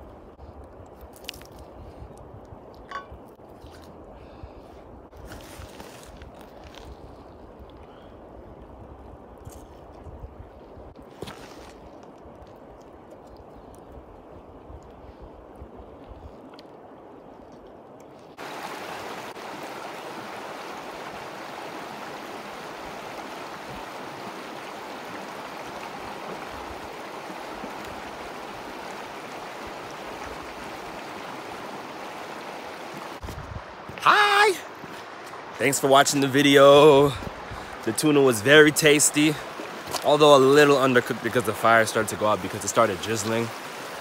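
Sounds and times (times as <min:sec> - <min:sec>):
creek rushing over stones: 0:18.2 - 0:44.0.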